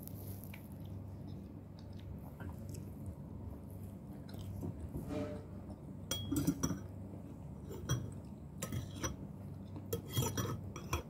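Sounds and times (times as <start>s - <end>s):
person chewing: 0.0s - 4.6s
metal spoon clinking ceramic bowl: 6.1s - 6.9s, 9.9s - 11.0s.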